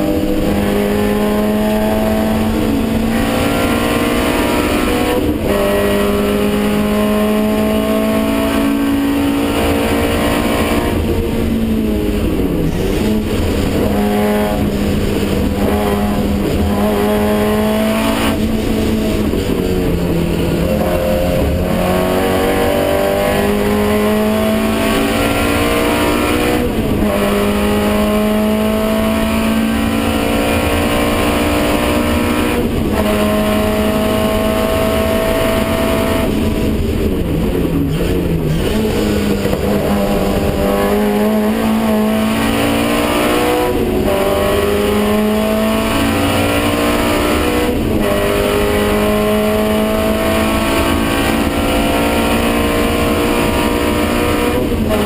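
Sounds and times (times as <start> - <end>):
racing car engine accelerating: 0.0 - 55.0.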